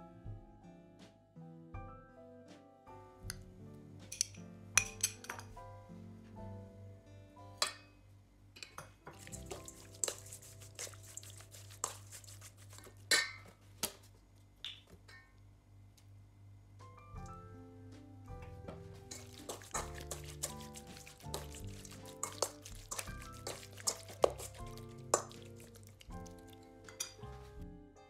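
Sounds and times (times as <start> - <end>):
soft instrumental music: 0.0 - 8.0, 9.1 - 12.4, 16.7 - 28.0
metal spoon clinking on steel bowl: 4.1 - 5.4, 8.6 - 12.0, 13.1 - 13.5, 19.1 - 26.3, 26.9 - 27.2.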